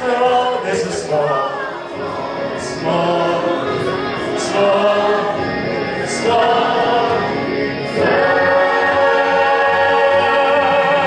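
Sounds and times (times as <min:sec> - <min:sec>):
group of people singing: 0:00.0 - 0:11.0
music: 0:00.0 - 0:11.0.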